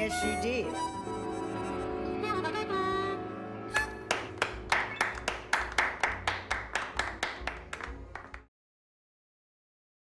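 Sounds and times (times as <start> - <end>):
band music: 0.0 - 8.2
hands clapping in rhythm: 3.7 - 8.5.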